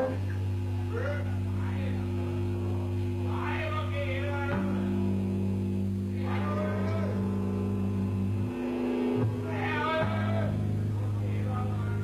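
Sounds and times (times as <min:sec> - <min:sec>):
black metal band playing: 0:00.0 - 0:12.0.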